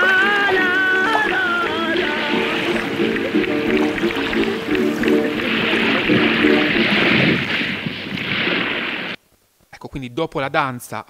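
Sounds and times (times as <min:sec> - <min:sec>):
chant-like sung melody: 0:00.0 - 0:06.8
steady rushing noise: 0:00.0 - 0:09.2.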